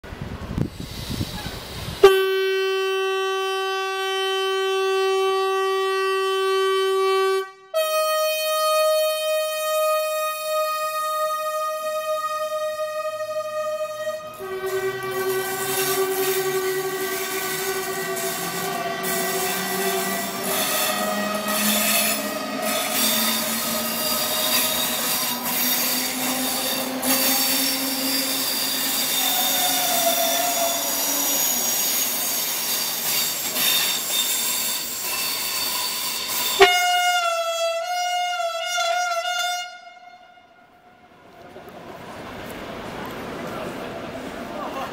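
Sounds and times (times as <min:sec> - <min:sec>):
train horn blast: 0:02.0 - 0:41.3
train running gear rumble: 0:11.4 - 0:36.7
train wheels squealing: 0:14.7 - 0:36.7.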